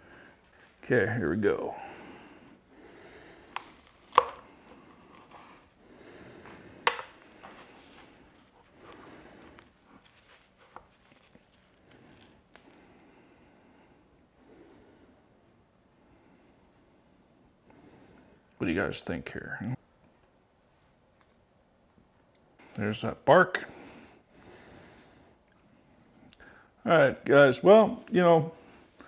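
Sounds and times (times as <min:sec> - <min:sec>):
knife tapping cutting board: 0:06.8 - 0:07.1.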